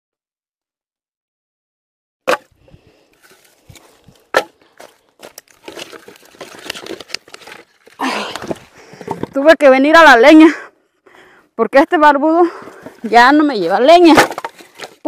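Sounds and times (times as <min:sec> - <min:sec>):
dry sticks crackling and rustling: 0:03.1 - 0:09.3, 0:12.8 - 0:15.0
wooden knocks: 0:08.5 - 0:09.4.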